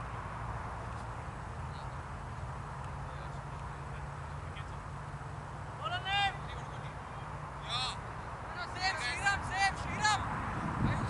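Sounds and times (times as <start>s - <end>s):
wind on microphone: 9.3s - 11.0s.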